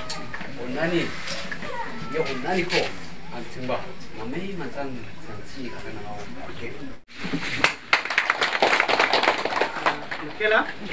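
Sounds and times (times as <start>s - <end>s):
people clapping: 7.5s - 10.7s.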